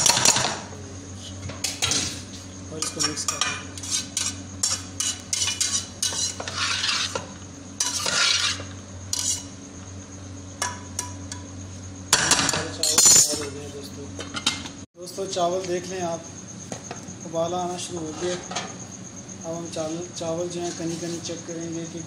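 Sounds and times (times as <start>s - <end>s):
metal spatula scraping saucepan: 2.8s - 9.5s.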